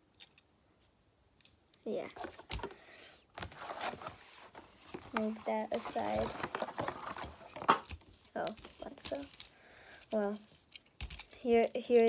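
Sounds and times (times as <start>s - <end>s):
plastic packaging crinkling: 3.4s - 9.5s.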